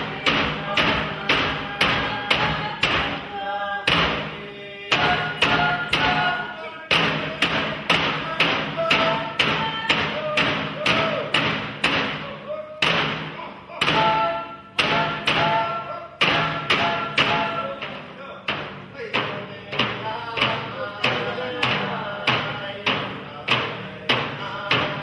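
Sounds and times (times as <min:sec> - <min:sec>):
frame drums beating: 0:00.0 - 0:25.0
group singing a chant: 0:00.0 - 0:25.0.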